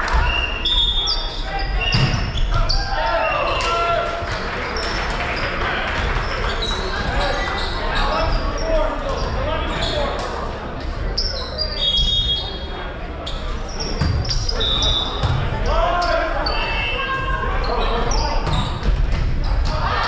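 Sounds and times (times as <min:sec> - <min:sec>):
sneakers squeaking: 0:00.0 - 0:03.7, 0:04.7 - 0:20.0
people calling out: 0:14.5 - 0:18.4.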